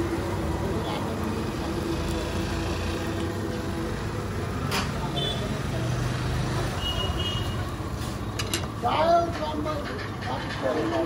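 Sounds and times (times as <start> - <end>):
steady traffic noise: 0.0 - 11.0.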